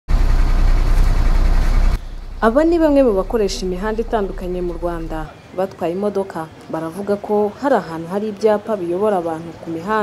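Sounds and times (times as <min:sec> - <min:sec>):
bus engine rumbling: 0:00.1 - 0:05.3.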